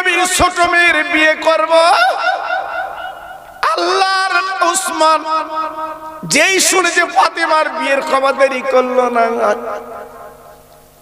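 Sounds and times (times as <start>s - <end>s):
man speaking over loudspeaker: 0.0s - 10.5s.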